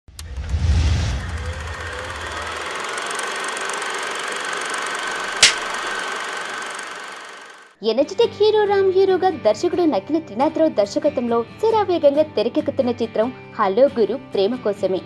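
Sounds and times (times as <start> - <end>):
low boom: 0.2 - 2.3
rushing swell: 0.2 - 4.6
sharp hit: 5.4 - 5.8.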